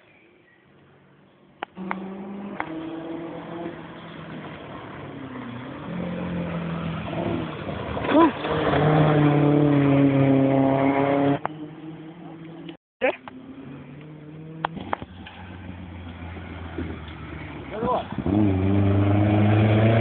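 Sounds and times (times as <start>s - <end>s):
rally car engine accelerating: 1.7s - 12.7s, 13.4s - 20.0s.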